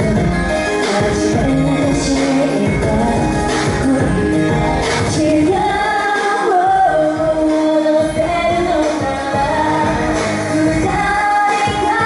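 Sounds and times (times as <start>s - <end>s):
pop ballad backing music: 0.0s - 12.0s
woman singing into microphone: 0.0s - 12.0s.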